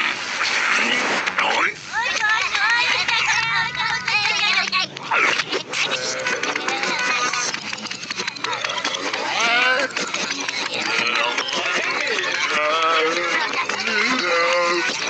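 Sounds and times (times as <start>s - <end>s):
high-pitched reversed cartoon voices: 0.6s - 15.0s.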